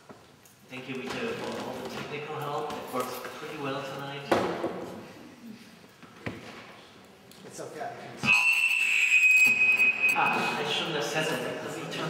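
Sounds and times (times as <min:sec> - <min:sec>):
high-pitched microphone feedback squeal: 0:08.2 - 0:11.1.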